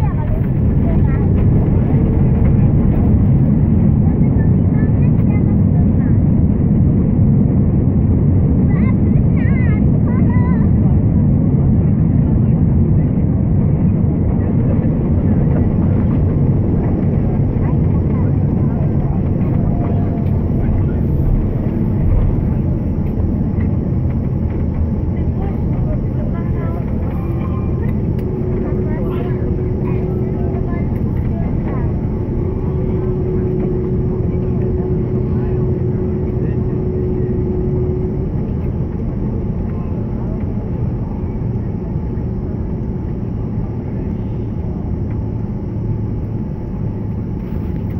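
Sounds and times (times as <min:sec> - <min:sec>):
airliner engines rumbling: 0:00.0 - 0:47.9.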